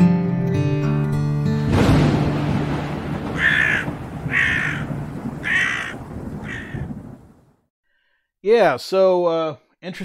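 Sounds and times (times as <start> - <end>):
crow cawing: 3.2 - 7.4.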